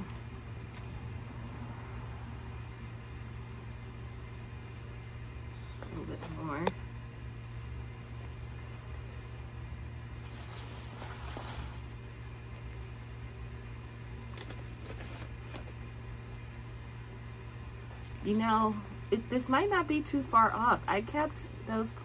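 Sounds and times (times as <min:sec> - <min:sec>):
steady low hum: 0:00.0 - 0:22.0
potting soil rustling: 0:04.8 - 0:13.0, 0:13.8 - 0:15.9.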